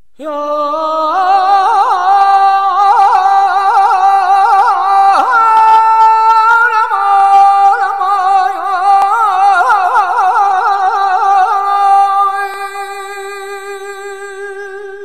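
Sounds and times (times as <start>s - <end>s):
woman singing with vibrato: 0.0s - 15.0s.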